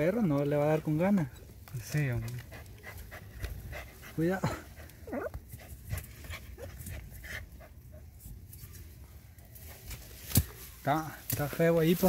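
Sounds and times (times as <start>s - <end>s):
dog panting: 1.8s - 8.1s.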